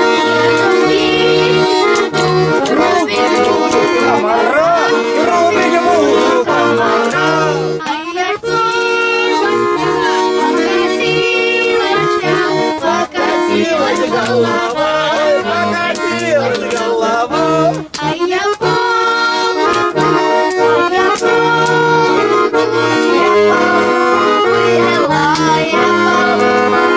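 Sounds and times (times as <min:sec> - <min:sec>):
button accordion playing: 0:00.0 - 0:26.9.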